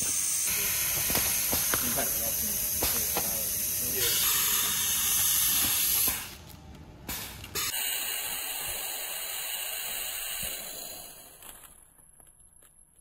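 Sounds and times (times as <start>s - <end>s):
compressed air hissing: 0.0s - 6.4s, 7.1s - 11.4s.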